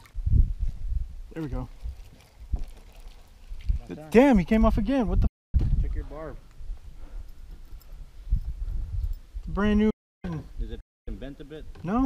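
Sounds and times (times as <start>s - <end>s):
wind rumble on microphone: 0.0s - 2.8s, 3.4s - 3.9s, 4.5s - 9.9s
man speaking: 3.8s - 5.2s.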